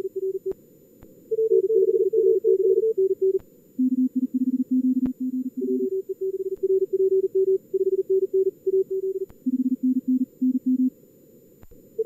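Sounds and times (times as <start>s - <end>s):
morse code tones: 1.3s - 10.9s.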